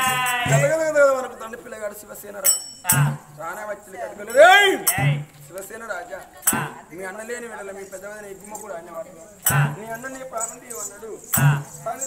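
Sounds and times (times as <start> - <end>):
man chanting a held vowel: 0.0 - 1.2.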